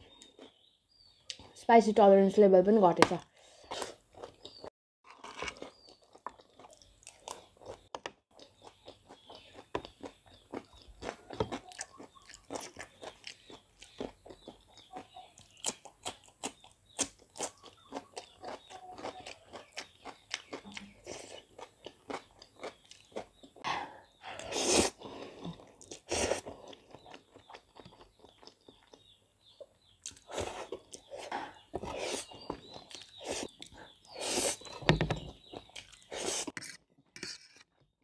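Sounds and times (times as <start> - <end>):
wet chewing of noodles: 3.4 - 37.5.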